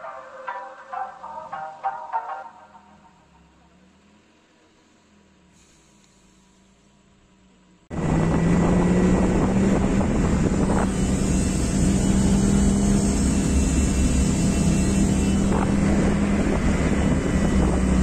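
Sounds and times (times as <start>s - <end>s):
car engine road and wind drone: 0.0s - 18.0s.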